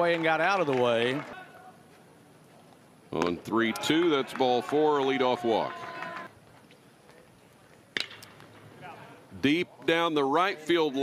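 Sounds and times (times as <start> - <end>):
quiet ballpark ambience: 0.0 - 11.0
metal bat hitting ball: 8.0 - 8.4.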